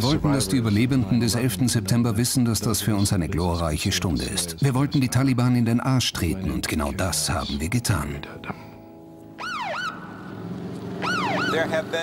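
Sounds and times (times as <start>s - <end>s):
electronic siren swooping: 9.4s - 10.4s, 11.0s - 12.0s.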